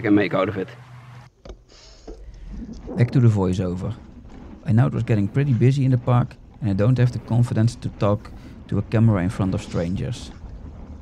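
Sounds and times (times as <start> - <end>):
bike tyres rolling on dirt: 2.2 - 11.0
wind rumble: 2.2 - 11.0.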